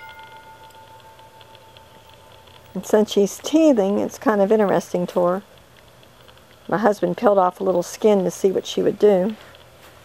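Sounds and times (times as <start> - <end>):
chime ringing: 0.0 - 2.8.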